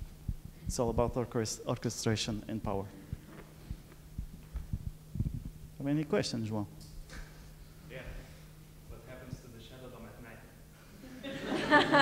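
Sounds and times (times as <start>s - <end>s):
soft low thumps: 0.0s - 1.3s, 2.3s - 5.8s
low electrical hum: 0.0s - 12.0s.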